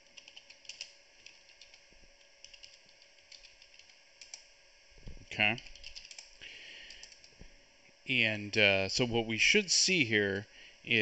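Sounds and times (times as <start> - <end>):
faint keyboard typing: 0.0 - 4.5, 5.4 - 7.5.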